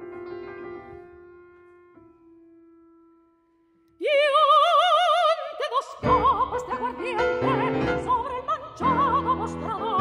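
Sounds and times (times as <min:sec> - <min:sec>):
soprano singing with vibrato: 0:04.0 - 0:10.0.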